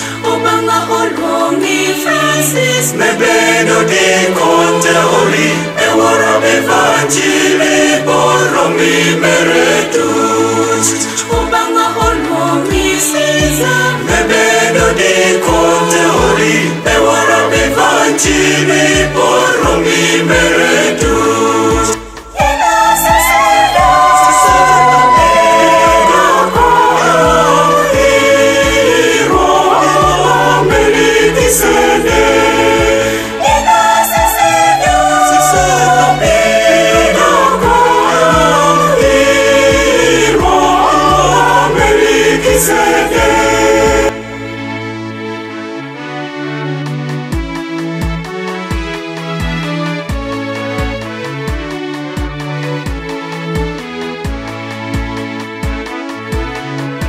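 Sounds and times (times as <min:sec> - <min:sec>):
choir singing a hymn: 0:00.0 - 0:44.5
quiet music: 0:00.0 - 0:57.0
steady bass line: 0:12.3 - 0:57.0.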